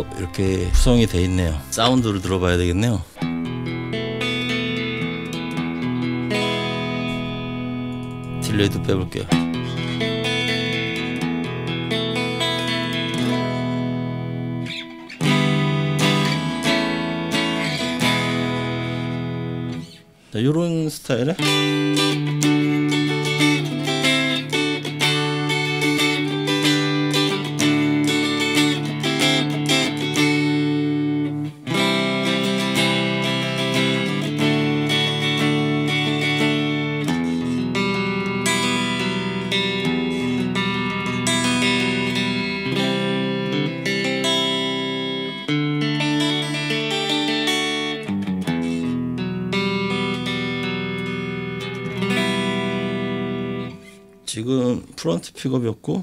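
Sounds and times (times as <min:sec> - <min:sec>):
clean electric guitar chords: 0:00.0 - 0:02.4, 0:03.1 - 0:20.1, 0:21.4 - 0:54.3.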